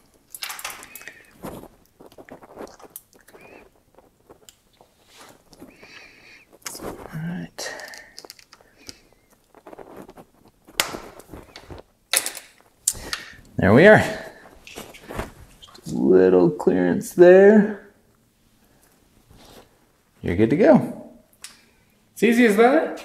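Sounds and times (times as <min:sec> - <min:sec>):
bicycle chain clicks and rattles: 0:00.3 - 0:01.2, 0:07.7 - 0:08.6.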